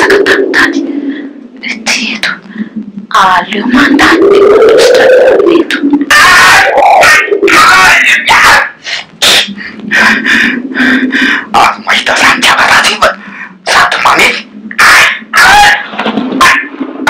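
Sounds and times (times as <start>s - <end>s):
hoarse voices speaking: 0.0s - 16.8s.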